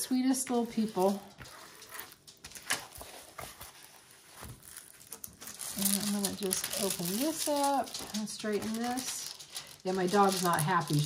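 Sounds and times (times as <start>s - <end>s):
plastic film crinkling: 0.0s - 11.0s.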